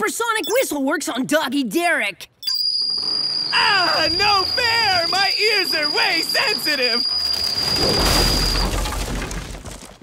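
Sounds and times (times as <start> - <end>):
shrill whistle tone: 2.4 - 8.8.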